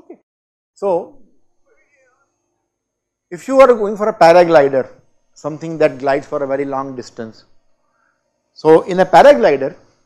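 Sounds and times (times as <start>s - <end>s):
man speaking: 0.8s - 1.3s, 3.3s - 7.4s, 8.6s - 9.8s.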